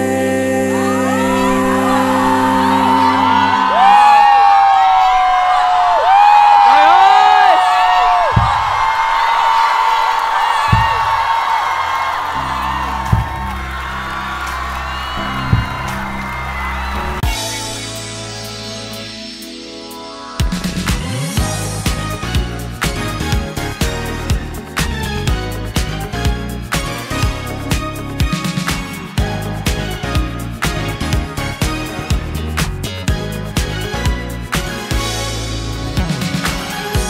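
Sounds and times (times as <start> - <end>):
held music chord: 0.0 - 3.9
concert audience cheering: 0.6 - 18.5
long loud scream: 0.8 - 17.6
low bass drone with hits: 12.4 - 18.2.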